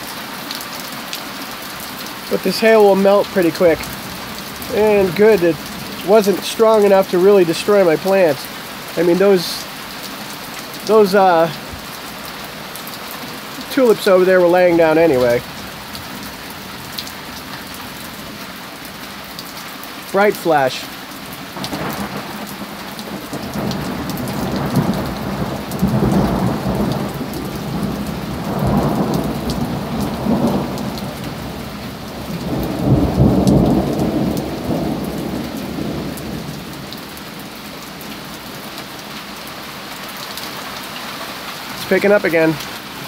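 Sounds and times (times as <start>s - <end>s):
heavy rain falling: 0.0s - 43.0s
thunder rolling: 23.1s - 36.7s.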